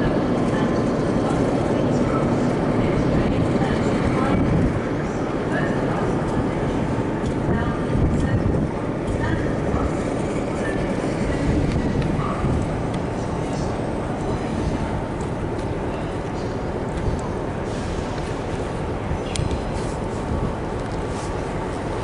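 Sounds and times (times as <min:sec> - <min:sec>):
faint voices: 0:00.0 - 0:17.8
passenger train rumbling: 0:00.0 - 0:22.0.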